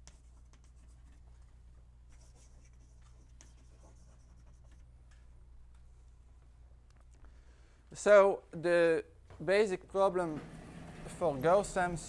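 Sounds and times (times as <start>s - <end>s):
chalk scratching on blackboard: 0.0s - 1.3s, 2.1s - 4.8s.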